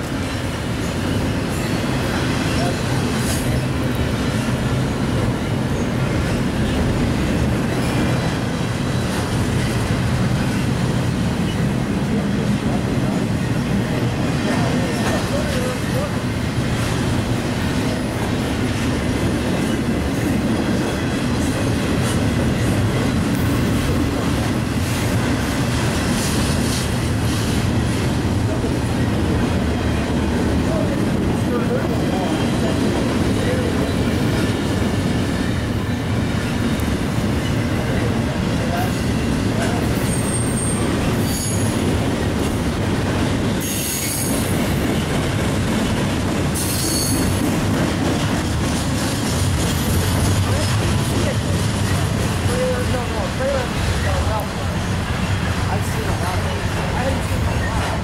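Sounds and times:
freight train rumbling past: 0.0 - 58.0
high-pitched wheel squeals: 40.0 - 41.8, 46.6 - 47.4.

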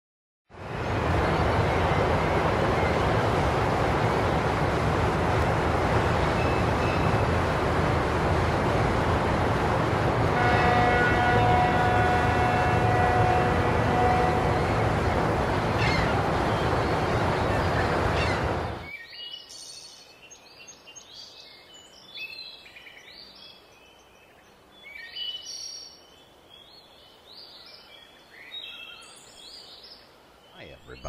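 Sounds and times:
multi-note horn: 10.3 - 15.0.

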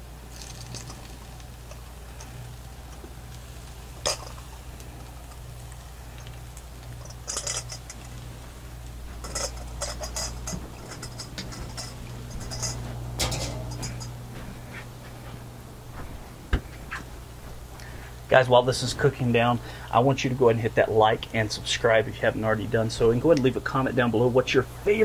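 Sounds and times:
food crackling on a griddle: 0.0 - 14.6
steady low hum: 0.0 - 25.0.

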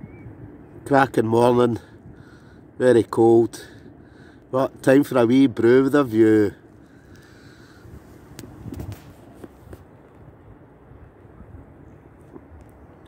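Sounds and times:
wind rumble on microphone: 0.0 - 13.0.

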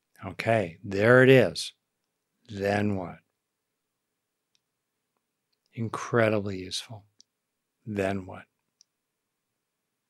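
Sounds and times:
man speaking: 0.2 - 1.8, 2.5 - 3.3, 5.8 - 7.1, 7.8 - 8.6
faint clicks: 4.4 - 5.8, 8.6 - 9.0.

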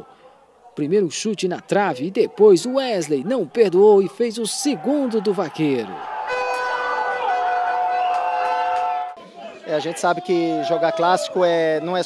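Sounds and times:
crowd noise: 0.0 - 12.0
fans blowing horns: 6.0 - 9.2.

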